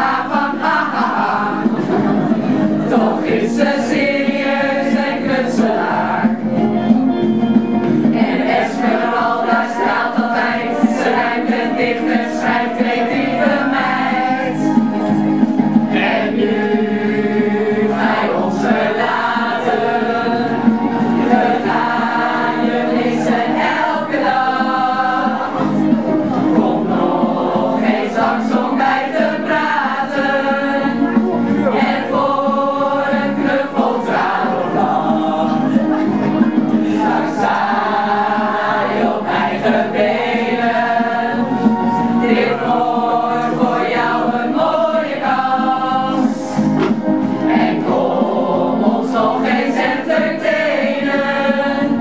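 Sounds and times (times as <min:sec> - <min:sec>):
group of people singing: 0:00.0 - 0:52.0.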